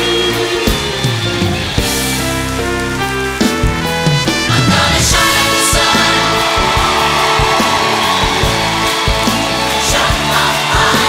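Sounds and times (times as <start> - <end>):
live band playing upbeat music: 0.0 - 11.0
steady drum beat: 3.0 - 11.0.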